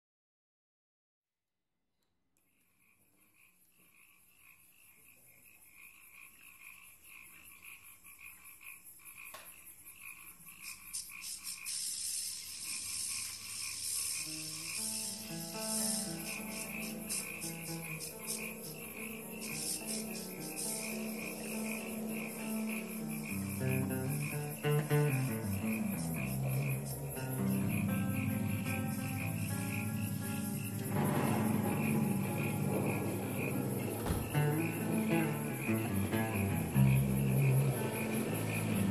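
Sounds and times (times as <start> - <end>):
rapidly pulsing high chirping: 10.2 - 38.9.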